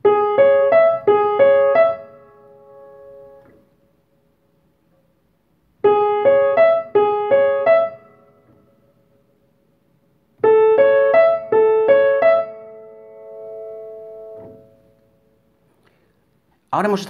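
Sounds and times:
upright piano notes: 0.0 - 4.0, 5.7 - 9.6, 10.3 - 15.8.

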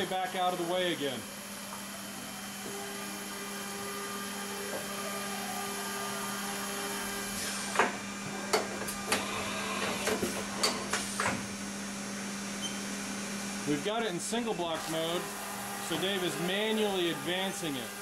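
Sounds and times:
machine hum: 0.0 - 18.0
motor whine: 0.0 - 18.0.

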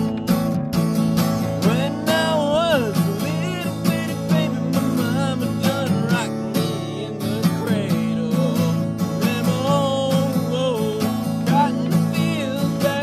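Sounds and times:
acoustic guitar strumming: 0.0 - 13.0
man singing: 1.4 - 13.0.

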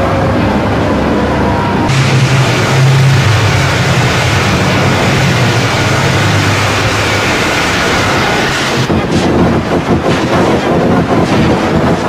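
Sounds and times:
loud harsh noise: 0.0 - 12.0
steady low hum: 0.0 - 12.0.

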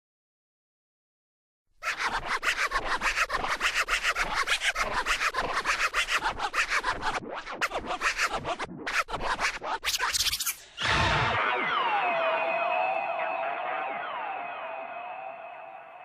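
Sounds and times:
rapid dj scratching: 1.8 - 14.8.

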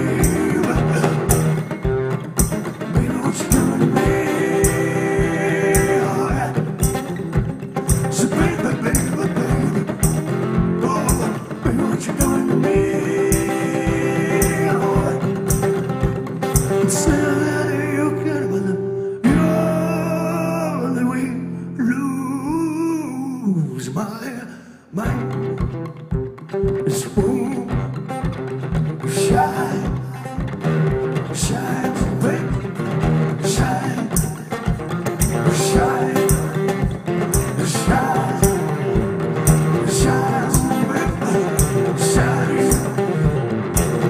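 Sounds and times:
man singing: 0.0 - 7.3, 7.9 - 16.0, 16.6 - 25.7, 26.8 - 28.2, 29.0 - 30.5, 31.3 - 44.0
low thumping beat: 0.0 - 17.2, 33.6 - 44.0
strummed acoustic guitar: 0.0 - 22.9, 25.0 - 44.0
steady low beat: 35.2 - 44.0.

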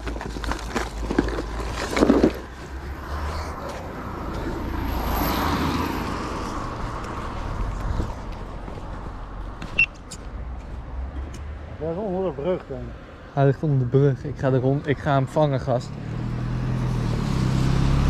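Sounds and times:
car passing on road: 1.7 - 18.0.

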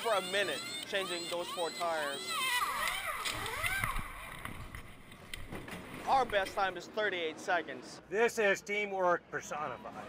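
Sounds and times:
pneumatic impact wrench whine: 0.0 - 5.0.

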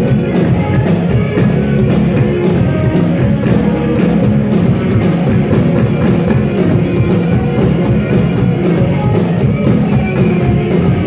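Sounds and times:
bass guitar: 0.0 - 11.0
drum kit with cymbals: 0.0 - 11.0
electric guitars: 0.0 - 11.0.

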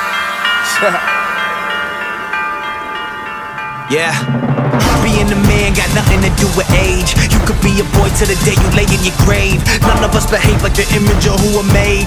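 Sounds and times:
sustained synth chord: 9.8 - 11.1.

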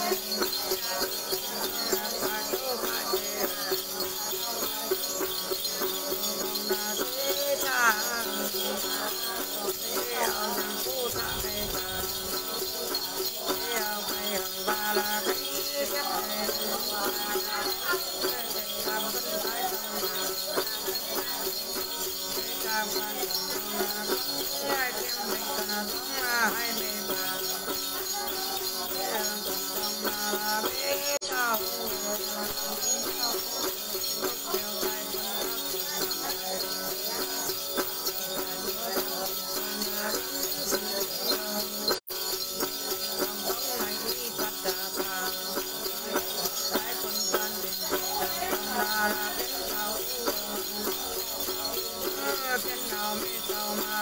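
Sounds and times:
woman singing: 0.0 - 42.0, 42.6 - 54.0
bell rattle jingling: 0.0 - 54.0.

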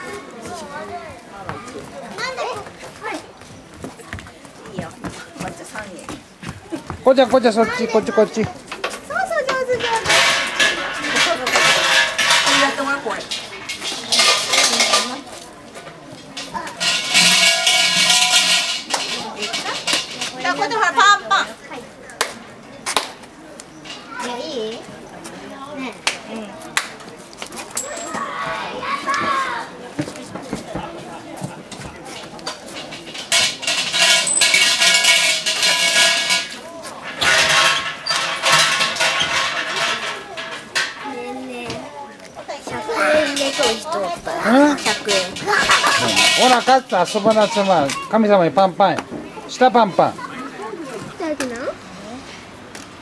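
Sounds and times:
shrine bell jangling: 27.7 - 28.3.

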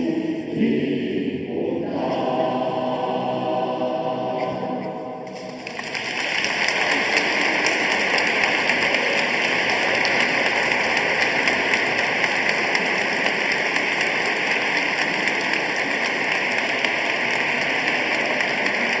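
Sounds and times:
choir singing chord: 0.0 - 5.7
audience applause: 5.3 - 19.0.

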